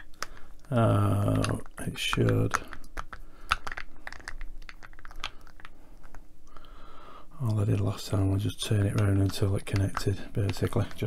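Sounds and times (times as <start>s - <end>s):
plastic wheels clicking and scraping: 8.8s - 11.0s.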